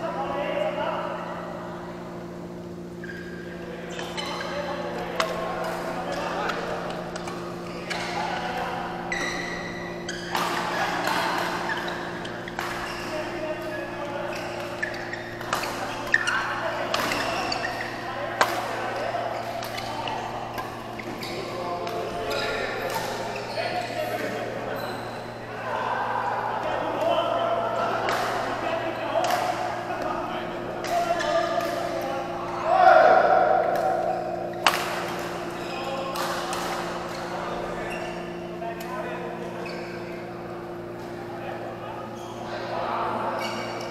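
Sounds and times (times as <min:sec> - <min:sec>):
players' voices: 0:00.0 - 0:43.9
steady electrical hum: 0:00.0 - 0:43.9
rackets striking shuttlecock: 0:10.2 - 0:13.7, 0:14.5 - 0:18.8, 0:33.3 - 0:35.5.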